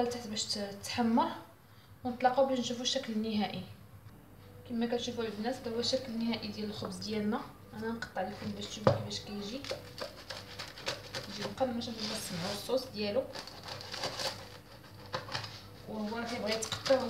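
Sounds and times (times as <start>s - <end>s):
woman speaking softly: 4.6s - 9.7s, 11.3s - 13.4s, 15.9s - 17.0s
knife cutting through bread crust: 9.4s - 17.0s.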